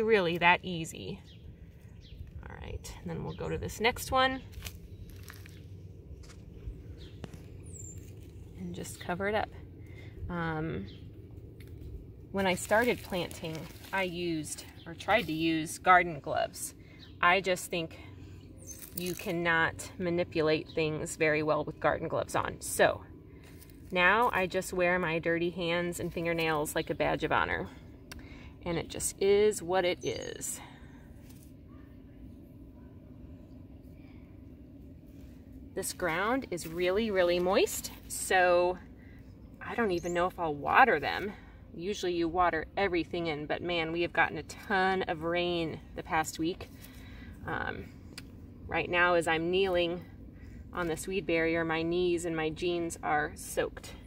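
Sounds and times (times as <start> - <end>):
low steady rumble: 0.0 - 54.0
fingers rustling in soil: 3.9 - 9.2, 11.3 - 16.2, 18.6 - 19.7, 23.4 - 27.2, 31.1 - 31.8, 35.0 - 38.7.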